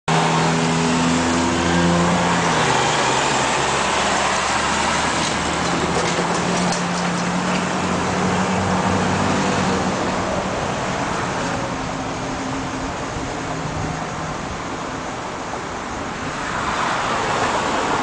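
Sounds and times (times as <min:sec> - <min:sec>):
traffic engine and road noise: 0:00.1 - 0:18.0.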